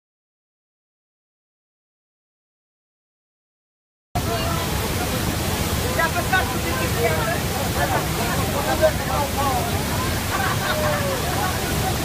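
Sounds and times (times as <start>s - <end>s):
faint voices: 4.2s - 12.0s
waterfall rushing: 4.2s - 12.0s.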